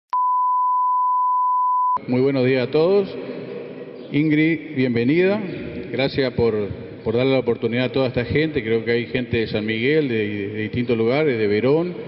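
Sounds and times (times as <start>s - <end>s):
continuous test tone beep: 0.1s - 2.0s.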